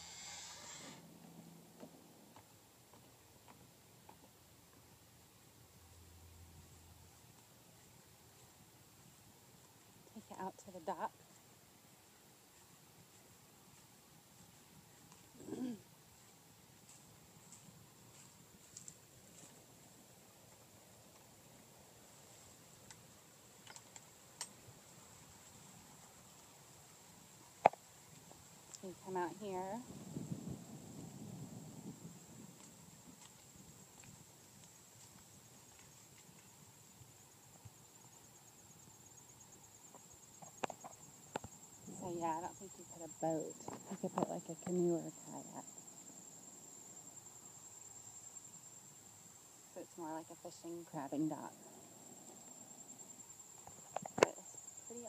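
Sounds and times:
faint hiss: 0:00.0 - 0:55.0
faint ticks: 0:16.2 - 0:19.6, 0:22.3 - 0:26.7, 0:32.5 - 0:42.0.

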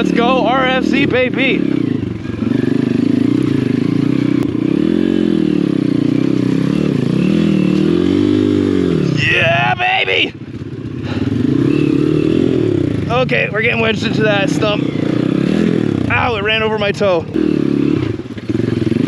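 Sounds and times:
motorbike engine revving: 0:00.0 - 0:19.0.

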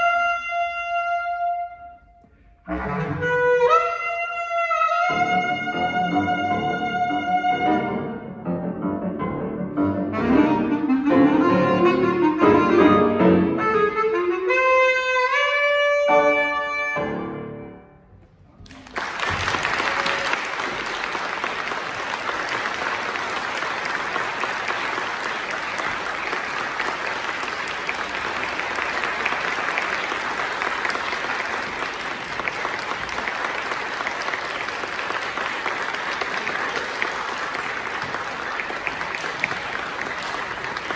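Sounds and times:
audience applauding: 0:18.6 - 0:40.9.

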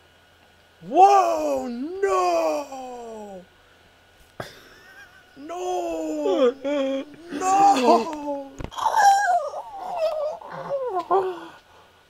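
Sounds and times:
high-pitched vocal cries: 0:00.8 - 0:03.5, 0:05.4 - 0:11.6.

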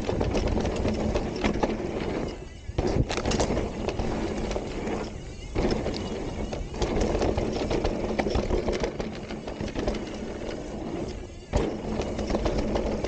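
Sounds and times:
bike clicks and rattles: 0:00.0 - 0:13.0
tyres rolling over dirt: 0:00.0 - 0:13.0
wind buffeting microphone: 0:00.0 - 0:13.0.

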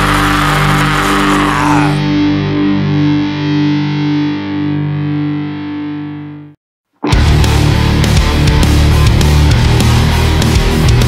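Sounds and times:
distorted electric guitar chord ringing: 0:00.0 - 0:10.8
punk band playing loudly: 0:07.1 - 0:11.0.

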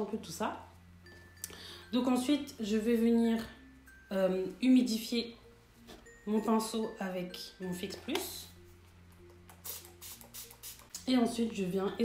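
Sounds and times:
faint background music: 0:00.0 - 0:12.0
spray bottle misting: 0:09.3 - 0:11.0.

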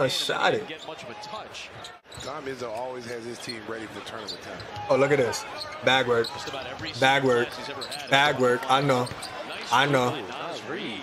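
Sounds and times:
arena crowd noise: 0:00.0 - 0:11.0
commentator talking: 0:04.2 - 0:11.0.

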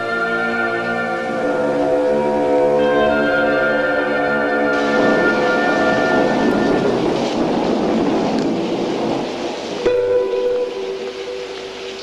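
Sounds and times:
loud held orchestral chord: 0:00.0 - 0:08.0
dense noisy rumble: 0:00.0 - 0:12.0.

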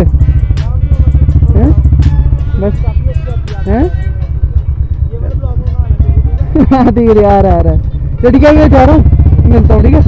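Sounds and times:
motorcycles rumbling: 0:00.0 - 0:10.0.

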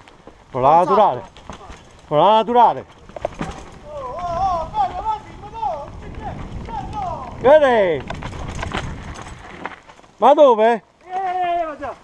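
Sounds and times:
mountain bike rattling over rocks: 0:00.0 - 0:12.0
wind rushing on microphone: 0:03.2 - 0:09.7.

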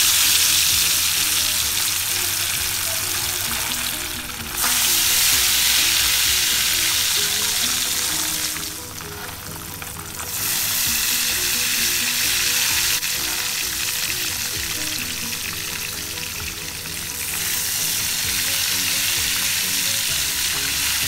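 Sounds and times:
food sizzling in hot oil: 0:00.0 - 0:21.0.

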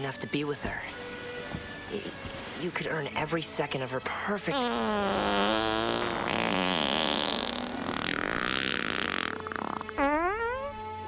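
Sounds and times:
comedy fart sound effects: 0:04.5 - 0:11.0.

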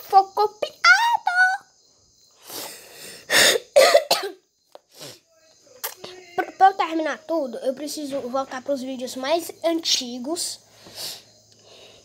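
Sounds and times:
person coughing: 0:03.3 - 0:04.4.

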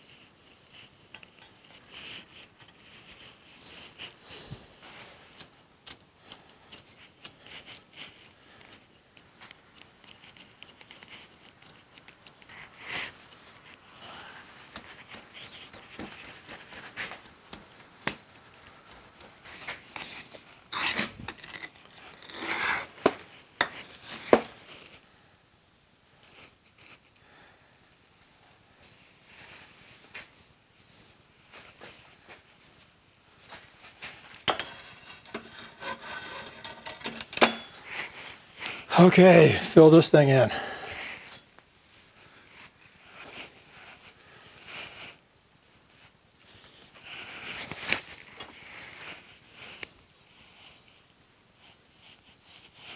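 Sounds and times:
scraping in metal flask: 0:34.5 - 0:38.2.

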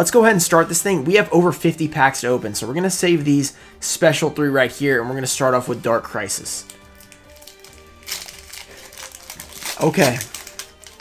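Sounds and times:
quiet background music: 0:00.0 - 0:11.0
foil wrapper crinkling and tearing: 0:06.6 - 0:11.0.

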